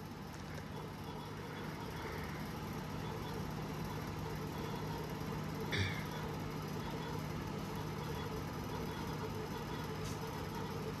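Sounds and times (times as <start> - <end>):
low background hum with hiss: 0.0 - 11.0.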